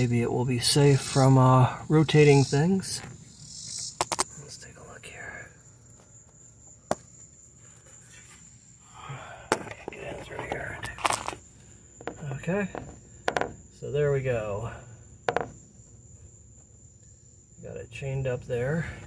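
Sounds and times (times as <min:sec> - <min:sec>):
crickets trilling: 0:00.0 - 0:19.0.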